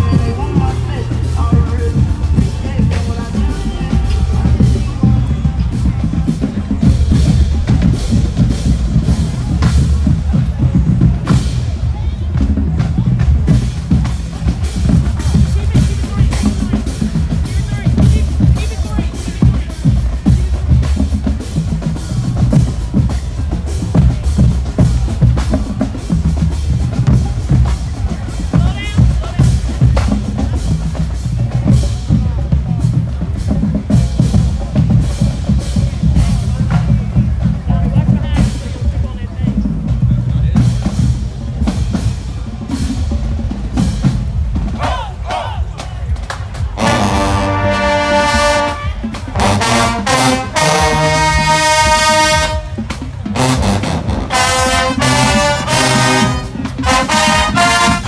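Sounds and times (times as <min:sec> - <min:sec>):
drumline playing bass and snare: 0:00.0 - 0:58.0
brass section chords: 0:46.7 - 0:58.0.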